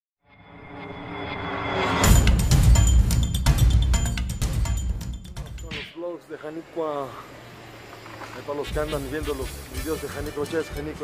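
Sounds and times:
opening music: 1.5s - 5.8s.

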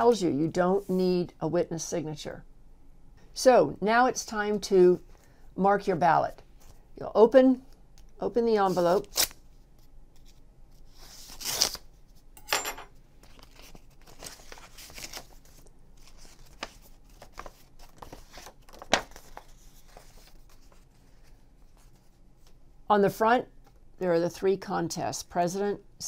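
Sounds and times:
paper rustling: 13.2s - 22.5s.

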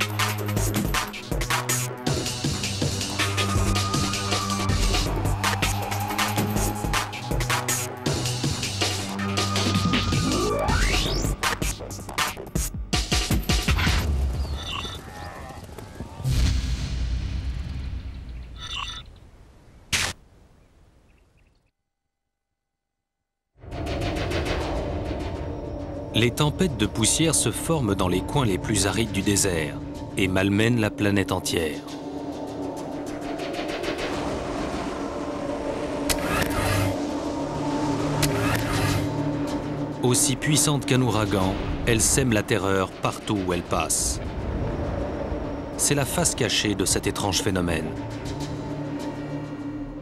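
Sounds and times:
deep boom: 16.2s - 18.6s
low steady drone: 23.7s - 50.0s
low rumble: 31.8s - 50.0s
whooshing wind gusts: 31.8s - 50.0s.

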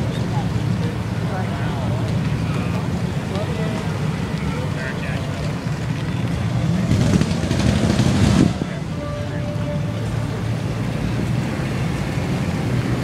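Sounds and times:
car engine low rumble: 0.0s - 13.0s.

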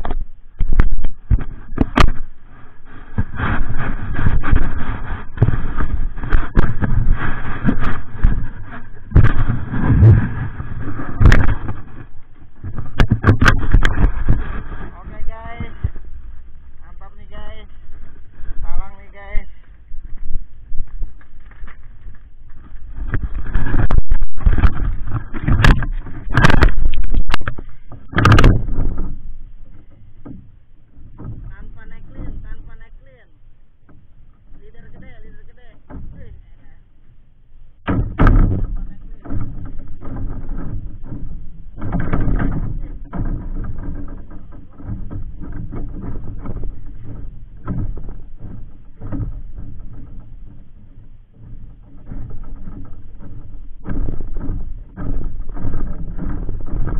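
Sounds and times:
bamboo deck creaking: 0.0s - 56.9s
wind on microphone: 0.0s - 56.9s.

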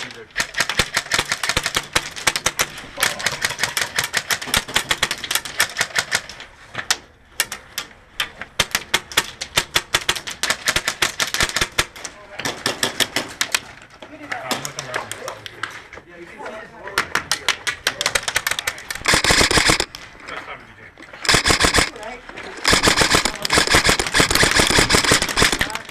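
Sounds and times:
airsoft guns firing: 0.3s - 6.4s, 8.6s - 13.5s, 17.9s - 20.0s, 21.2s - 25.9s.

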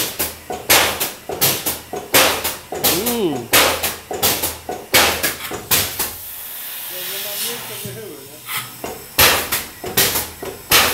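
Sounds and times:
spray machine hissing: 6.3s - 8.2s.

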